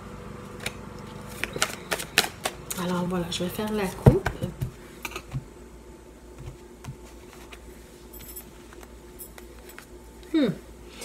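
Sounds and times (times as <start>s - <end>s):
cards snapping and clicking: 0.6s - 2.8s.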